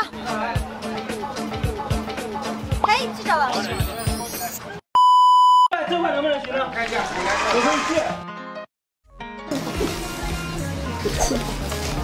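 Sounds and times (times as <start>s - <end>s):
high-pitched censor beep: 3.7s - 5.7s.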